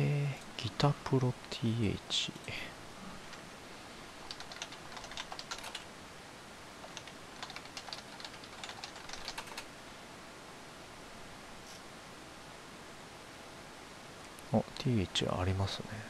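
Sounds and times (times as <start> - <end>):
keyboard typing clicks: 4.3 - 5.8, 6.8 - 9.7.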